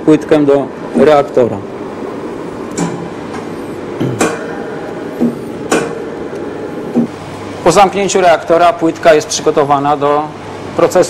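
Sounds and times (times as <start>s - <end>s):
steady hum: 0.0s - 11.0s
sharp metallic knocks: 5.2s - 6.1s.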